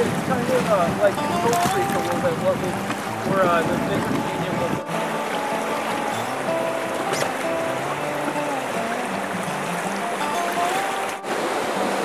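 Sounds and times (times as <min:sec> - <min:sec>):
music with held notes: 0:00.0 - 0:12.0
rushing whitewater: 0:00.0 - 0:12.0.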